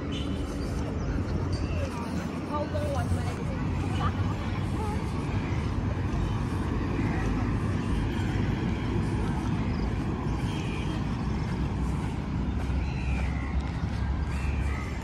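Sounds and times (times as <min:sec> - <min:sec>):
low rumble of city traffic: 0:00.0 - 0:15.0
faint voices: 0:00.8 - 0:15.0.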